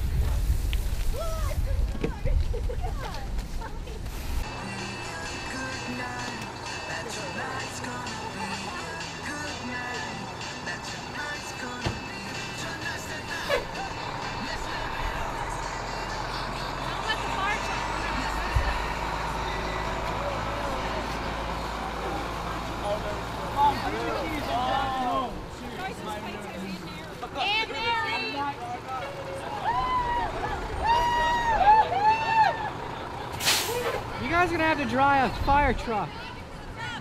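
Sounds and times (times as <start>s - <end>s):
diesel engine rumble: 0.0s - 37.0s
background music: 4.4s - 22.1s
people talking: 17.0s - 21.2s.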